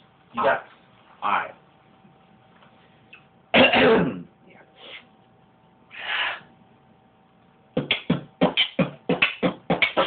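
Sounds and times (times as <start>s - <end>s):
person clearing throat: 3.6s - 4.3s
beatboxing: 7.8s - 10.0s.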